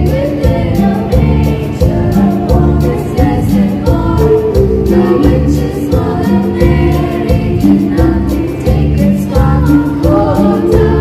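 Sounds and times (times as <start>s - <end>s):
girls singing a carol: 0.0s - 11.0s
instrumental backing with bass and beat: 0.0s - 11.0s.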